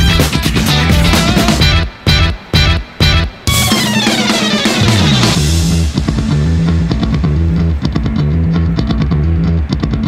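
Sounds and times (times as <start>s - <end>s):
rock music with guitar bass and drums: 0.0s - 10.0s.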